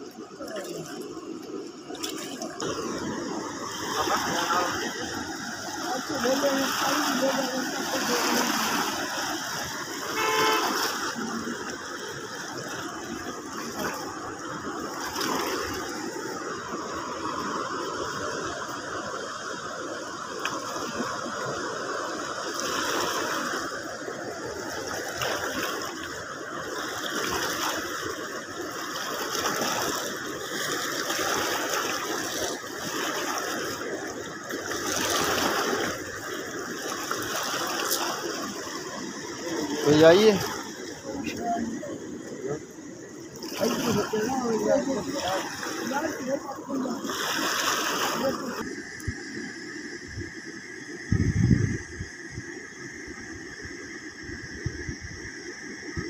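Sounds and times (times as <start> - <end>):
water rushing along bank: 0.0 - 56.0.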